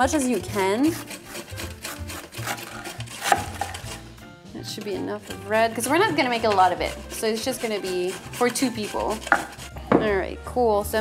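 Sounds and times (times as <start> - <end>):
carrot grated on box grater: 0.0 - 4.1, 4.7 - 9.8
knife slicing cabbage on board: 0.2 - 4.0, 5.3 - 9.7.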